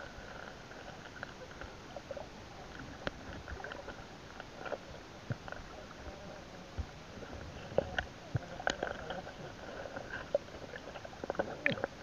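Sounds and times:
muffled underwater clicks and knocks: 0.0 - 12.0.

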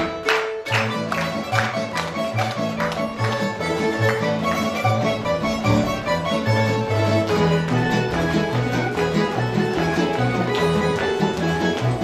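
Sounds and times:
folk band with plucked strings: 0.0 - 12.0.

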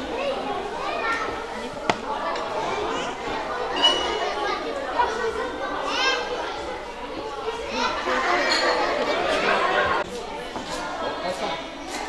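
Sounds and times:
adults and children talking: 0.0 - 12.0.

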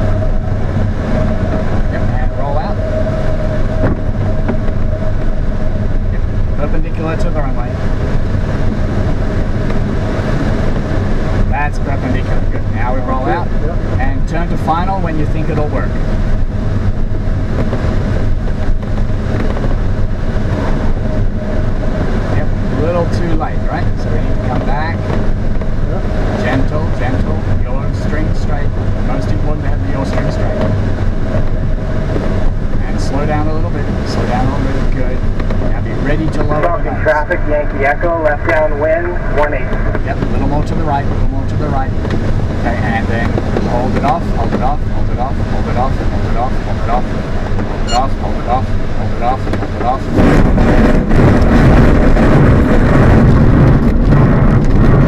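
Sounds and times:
airflow rushing in glider cockpit: 0.0 - 55.0.

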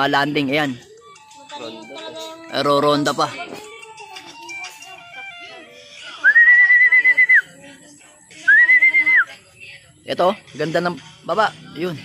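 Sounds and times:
person whistling long notes: 6.2 - 7.5, 8.5 - 9.3.

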